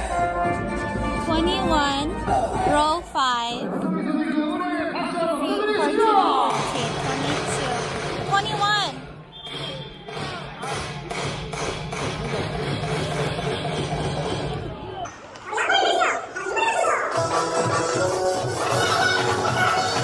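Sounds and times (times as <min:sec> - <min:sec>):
music over loudspeakers: 0:00.0 - 0:04.8, 0:06.4 - 0:14.8, 0:17.1 - 0:20.0
crowd voices: 0:00.7 - 0:20.0.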